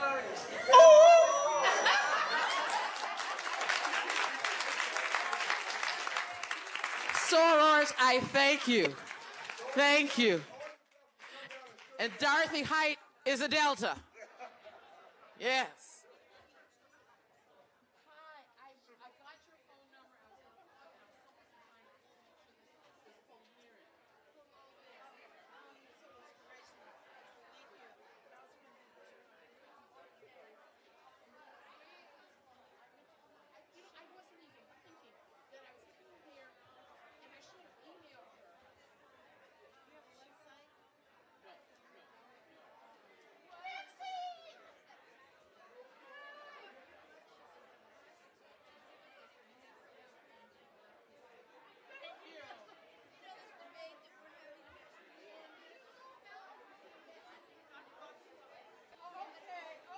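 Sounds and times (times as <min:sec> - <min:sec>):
indistinct chatter: 0:00.0 - 0:10.6
chatter of people talking: 0:00.0 - 0:59.9.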